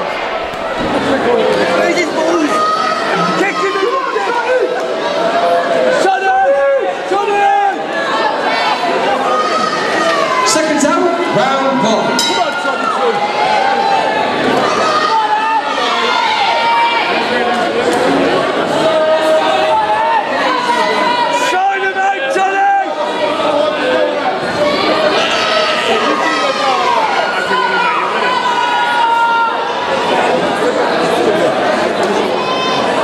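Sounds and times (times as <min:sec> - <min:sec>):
crowd shouting and cheering: 0:00.0 - 0:33.0.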